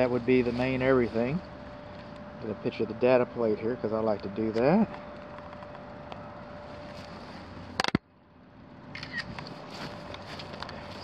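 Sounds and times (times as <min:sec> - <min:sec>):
footsteps on dry grass: 0:00.0 - 0:01.4, 0:09.2 - 0:11.0
phone camera shutter click: 0:08.9 - 0:09.4.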